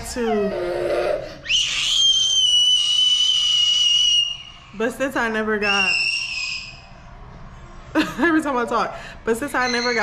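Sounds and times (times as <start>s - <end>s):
high-pitched whistle: 1.4s - 4.6s, 5.6s - 6.9s.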